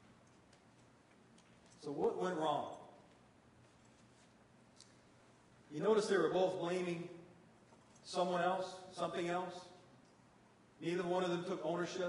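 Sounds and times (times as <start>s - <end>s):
man speaking: 1.8s - 3.0s, 5.7s - 7.3s, 8.0s - 9.8s, 10.8s - 12.0s.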